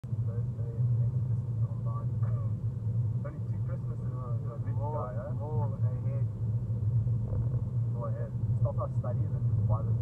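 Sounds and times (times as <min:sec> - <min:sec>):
road and tyre noise in car cabin: 0:00.0 - 0:10.0.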